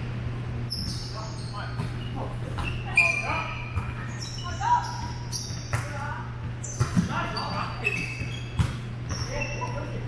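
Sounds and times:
steady low hum: 0.0s - 10.0s
sneaker squeak on hardwood floor: 0.7s - 10.0s.

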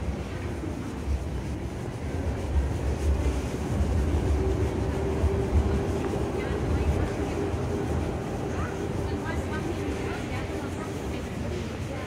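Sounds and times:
wind rumble on microphone: 0.0s - 12.0s
passers-by talking: 4.6s - 12.0s.

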